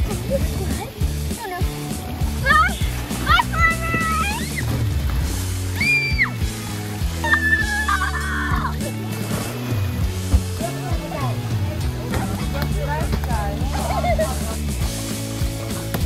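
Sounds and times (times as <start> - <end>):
background music with low beat: 0.0 - 16.0
children shouting: 2.4 - 4.6, 5.8 - 6.4, 7.2 - 8.9.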